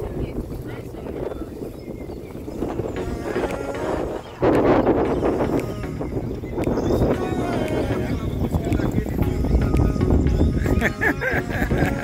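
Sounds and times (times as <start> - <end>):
indistinct chatter: 0.0 - 12.0
wind rumbling on microphone: 0.0 - 12.0.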